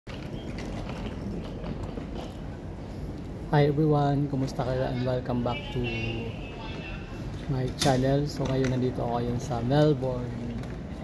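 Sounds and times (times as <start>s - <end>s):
airport terminal hall noise: 0.1s - 11.0s.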